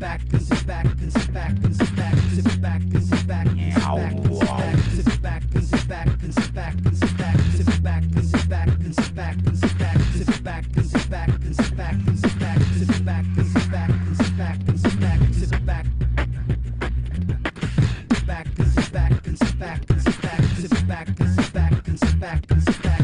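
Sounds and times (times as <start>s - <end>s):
beatbox vocal percussion: 0.0s - 23.0s
scratch-like vocal glides: 3.6s - 5.0s
deep sustained bass line: 3.6s - 5.2s.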